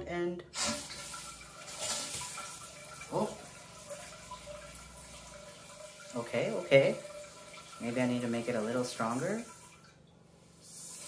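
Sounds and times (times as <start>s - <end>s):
bidet water spray hissing: 0.6s - 2.2s.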